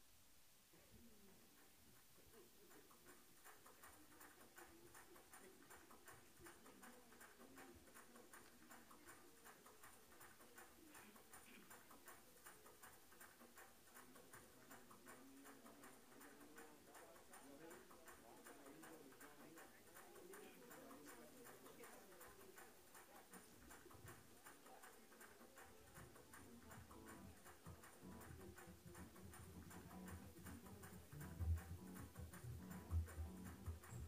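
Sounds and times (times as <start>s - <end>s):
light rapid ticking: 1.5s - 34.0s.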